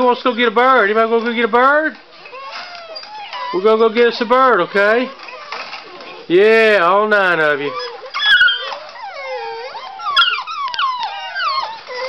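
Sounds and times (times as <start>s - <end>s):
puppies whining and yelping: 0.0s - 12.0s.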